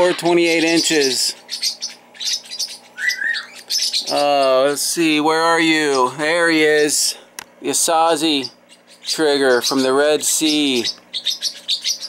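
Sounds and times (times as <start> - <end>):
small bird chirping: 0.0 - 6.8, 7.6 - 12.0
faint steady hum: 0.0 - 12.0.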